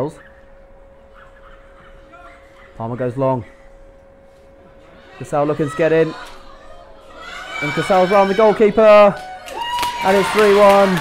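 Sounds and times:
distant calls: 0.0s - 2.8s
faint steady hum: 0.0s - 11.0s.

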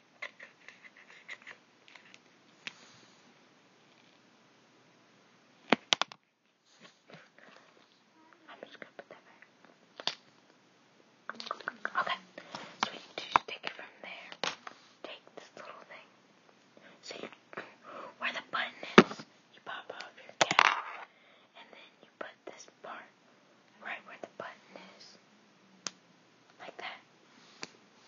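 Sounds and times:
soft whispering: 7.0s - 9.5s, 11.3s - 16.2s, 16.8s - 25.2s, 26.5s - 27.1s.

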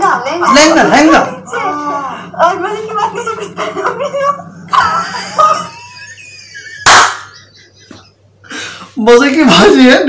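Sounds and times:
man laughing: 4.8s - 8.2s.

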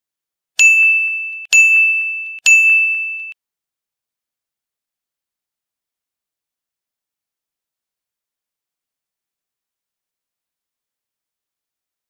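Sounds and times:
bell-like ding: 0.6s - 3.4s.

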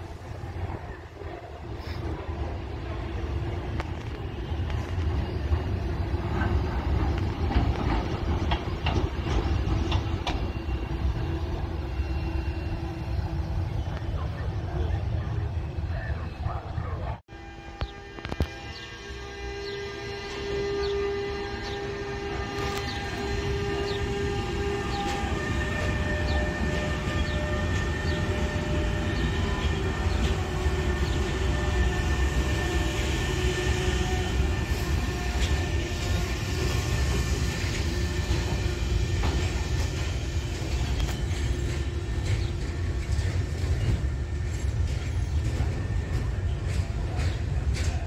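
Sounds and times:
freight train rail rumble: 0.0s - 48.0s.

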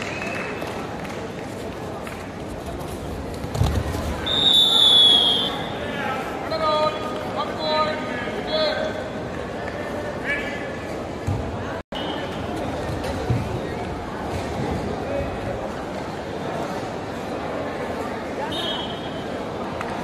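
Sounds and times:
referee's whistle blast: 4.2s - 5.7s.

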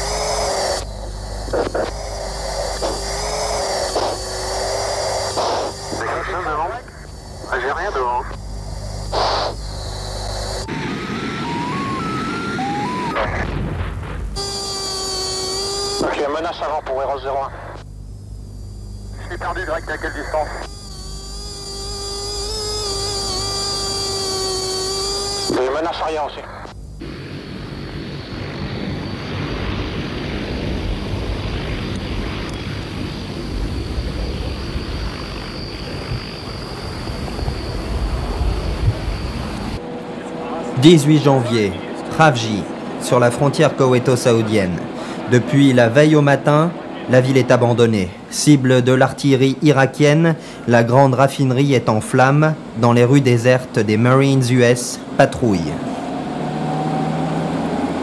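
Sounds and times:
hiss: 0.0s - 6.2s, 8.4s - 10.8s, 14.4s - 16.0s
steady electronic tone: 0.0s - 44.6s
jet engine roar with high whine: 0.0s - 58.0s.

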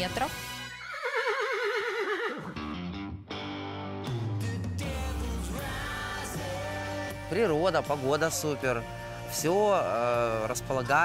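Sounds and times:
horse whinnying: 0.7s - 2.7s
guitar music: 2.5s - 10.9s.

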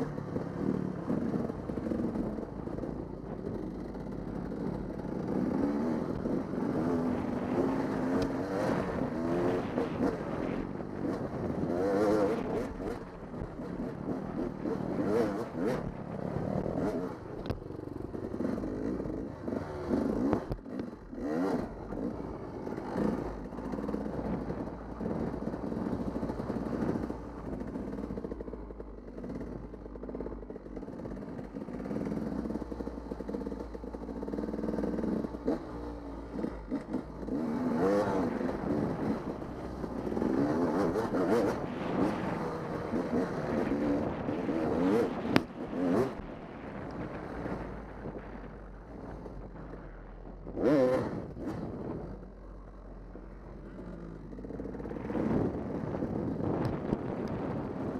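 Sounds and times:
dirt bike engine revving: 0.0s - 48.4s, 50.4s - 52.2s.

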